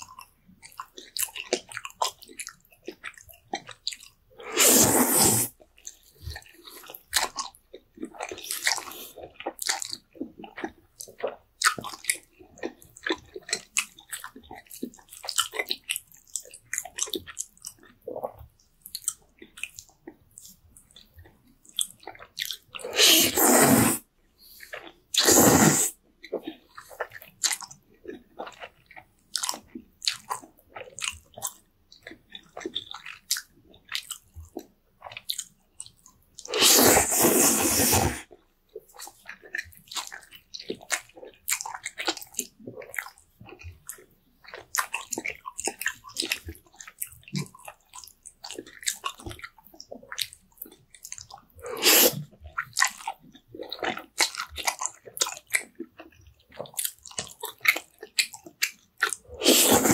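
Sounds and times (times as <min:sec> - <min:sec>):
wet chewing and lip smacking: 0:00.0 - 0:04.6, 0:05.5 - 0:23.6, 0:24.4 - 0:25.3, 0:26.2 - 0:59.9
slurping noodles: 0:04.4 - 0:05.6, 0:22.8 - 0:26.0, 0:36.4 - 0:38.3, 0:51.6 - 0:53.0, 0:59.0 - 0:59.9.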